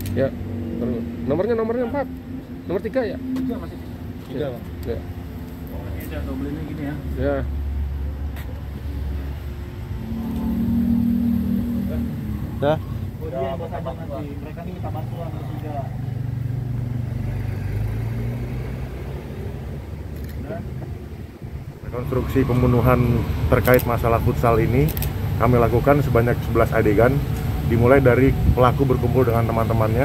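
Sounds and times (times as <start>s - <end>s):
indistinct voices: 0.0s - 15.9s, 21.7s - 30.0s
vehicle engine running: 19.6s - 30.0s.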